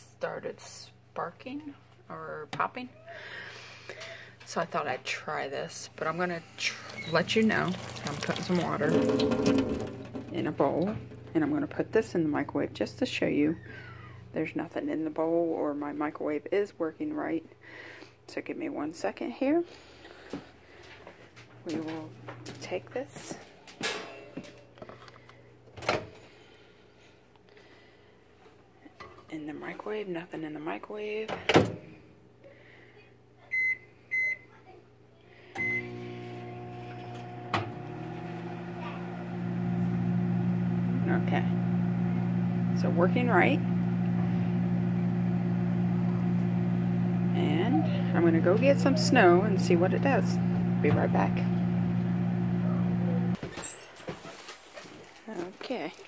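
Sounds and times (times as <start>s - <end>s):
microwave oven humming: 6.1s - 14.4s, 35.5s - 53.4s
bowl handling: 6.6s - 10.4s
door squeak: 6.9s - 7.2s.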